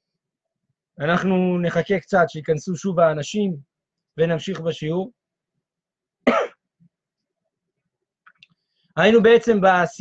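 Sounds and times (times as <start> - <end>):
man clearing his throat: 6.2 - 6.7.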